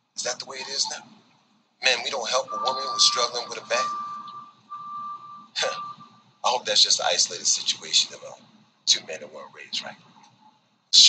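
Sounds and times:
steady high tone: 0.2 - 1.0, 1.8 - 6.8.

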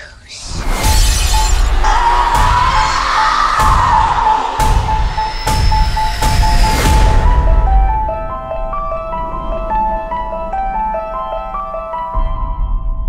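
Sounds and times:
steady high tone: 0.3 - 12.6
heavy hits: 0.6 - 12.4
loud dense trailer music: 0.6 - 13.0.

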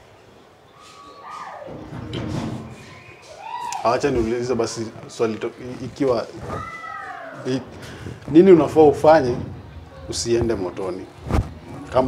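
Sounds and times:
people talking: 3.8 - 6.9, 8.3 - 12.0.

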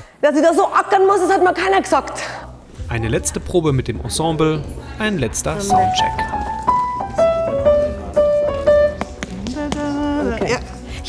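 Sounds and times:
piano melody: 4.1 - 10.7.

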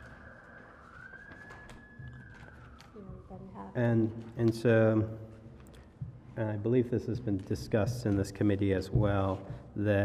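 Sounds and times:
faint siren wailing: 0.0 - 4.3.

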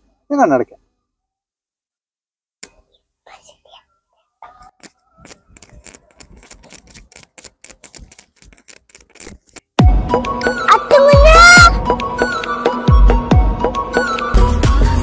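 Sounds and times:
clothing brushing microphone: 3.3 - 9.6
rapid small clicks: 4.6 - 9.7.

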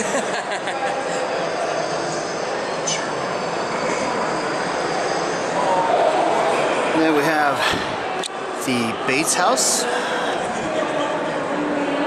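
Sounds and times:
busy exhibition hall din: 0.0 - 12.0.

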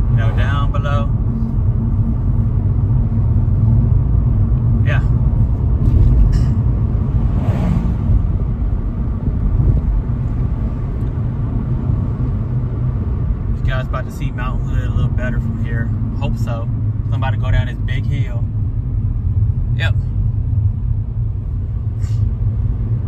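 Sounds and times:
car cabin road rumble: 0.0 - 23.0
oncoming vehicle passing: 6.8 - 10.6.

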